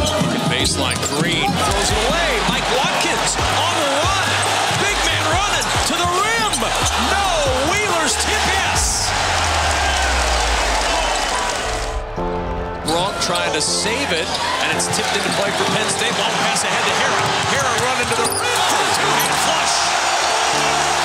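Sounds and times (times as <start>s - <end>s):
music with steady bass: 0.0s - 14.0s
arena crowd cheering: 0.0s - 21.0s.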